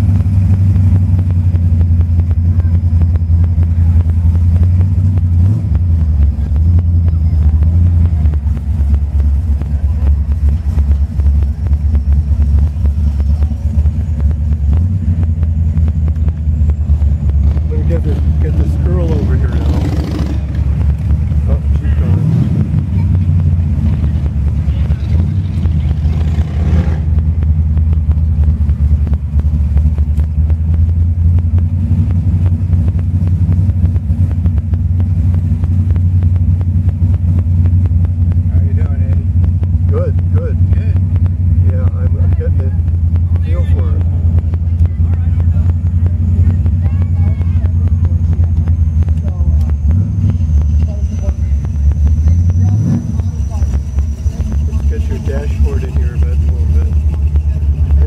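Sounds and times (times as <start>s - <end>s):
car engine running: 0.0s - 58.0s
engine revs: 0.0s - 58.0s.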